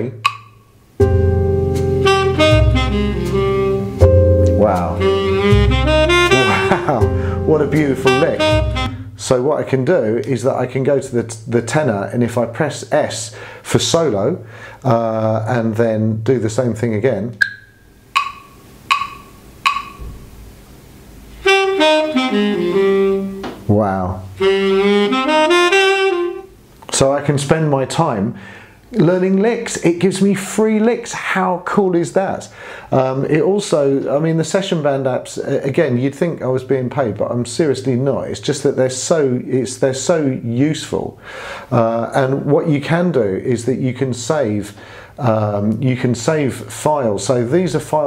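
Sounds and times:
bass line backing track: 0.0 - 9.4, 21.3 - 28.0
sharp clicks: 0.2 - 0.6, 17.4 - 20.0
tenor saxophone jazz lick: 1.0 - 9.3, 21.3 - 27.6.

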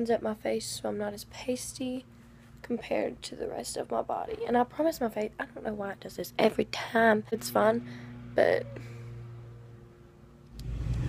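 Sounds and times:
car engine rumble from cabin: 8.0 - 11.0.

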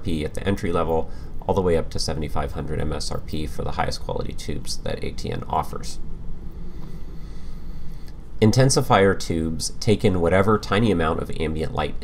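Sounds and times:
steady low rumble: 0.0 - 12.0.

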